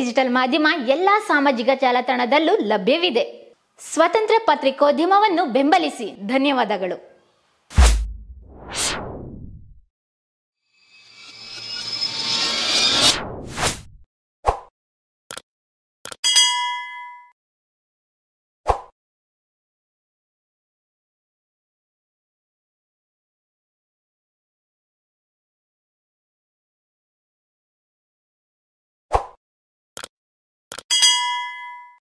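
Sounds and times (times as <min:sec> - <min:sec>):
notification bell ding: 0:16.2 - 0:17.3, 0:30.9 - 0:32.0.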